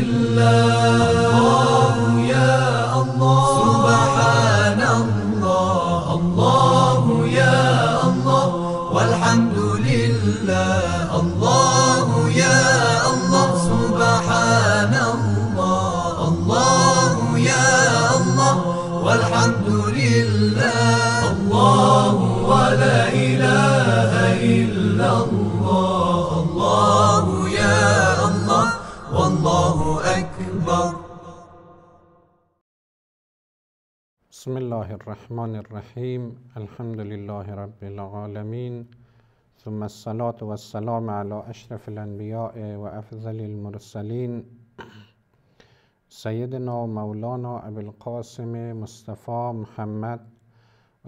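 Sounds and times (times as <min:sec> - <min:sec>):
solo voice chanting: 0:00.0 - 0:31.6.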